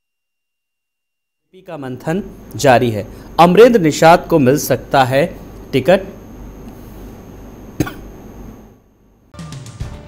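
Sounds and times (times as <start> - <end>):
low steady background noise: 1.5 - 9.3
person coughing: 7.8 - 8.2.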